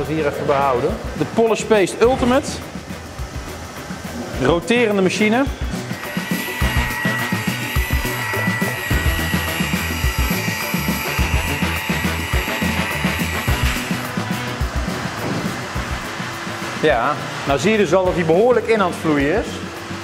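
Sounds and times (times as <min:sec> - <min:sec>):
background music with steady beat: 0:00.0 - 0:20.0
car polisher motor whine: 0:05.8 - 0:16.9.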